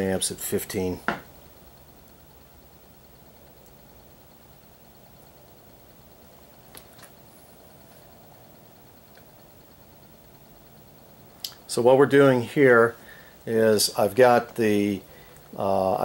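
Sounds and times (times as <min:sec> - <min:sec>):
generator running faintly: 0:00.0 - 0:16.0.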